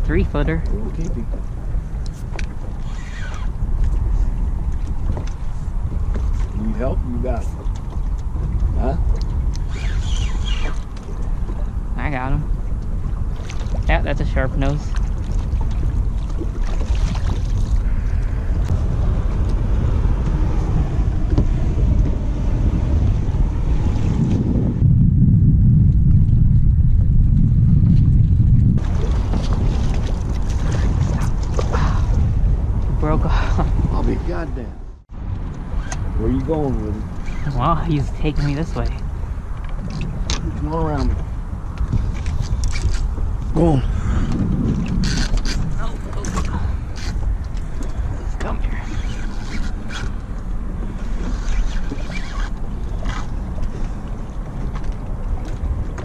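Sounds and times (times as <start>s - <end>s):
water slapping boat hull: 0.0s - 56.0s
wind buffeting microphone: 0.0s - 56.0s.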